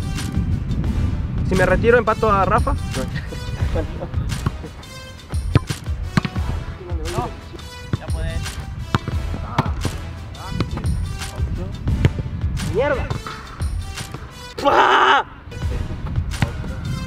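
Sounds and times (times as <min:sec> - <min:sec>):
background music: 0:00.0 - 0:17.0
football thuds: 0:04.0 - 0:04.7, 0:05.3 - 0:14.3.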